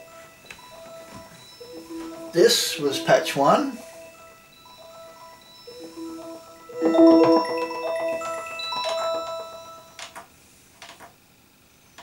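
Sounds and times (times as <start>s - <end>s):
bell-like synthesizer arpeggio: 0.0s - 10.0s.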